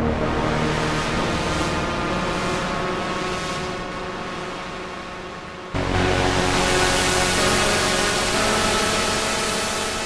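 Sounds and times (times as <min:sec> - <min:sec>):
synthesizer noisy pad: 0:00.0 - 0:10.0.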